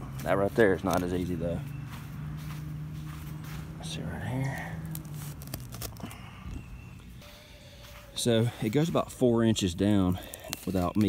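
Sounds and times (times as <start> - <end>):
soft clicks and rustles of grass: 0.1 - 7.2, 7.8 - 11.0.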